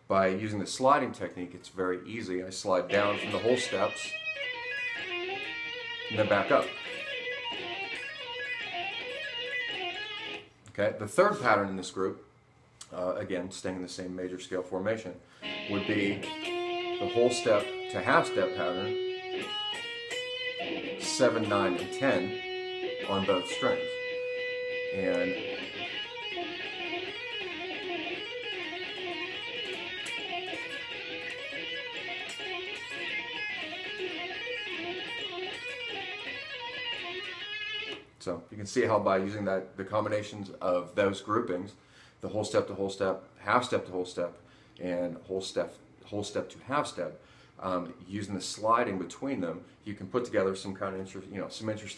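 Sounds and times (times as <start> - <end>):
electric guitar legato run: 2.9 - 10.4, 15.4 - 38.0.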